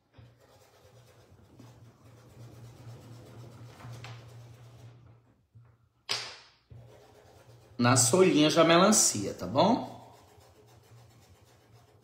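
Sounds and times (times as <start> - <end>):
paintbrush rubbing on fabric: 0.0 - 5.2, 6.7 - 12.0.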